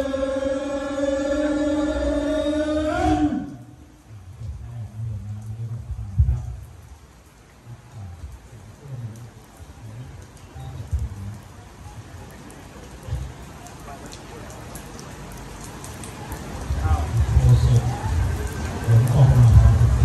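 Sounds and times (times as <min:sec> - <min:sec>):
indistinct low voices: 0:00.0 - 0:06.9, 0:07.6 - 0:20.0
light rain falling: 0:00.0 - 0:20.0.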